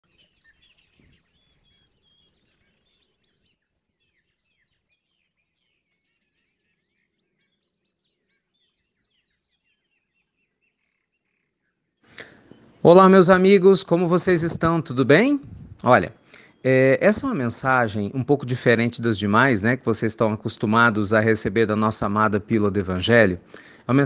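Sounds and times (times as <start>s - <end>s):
bird chirping: 0.0s - 24.0s.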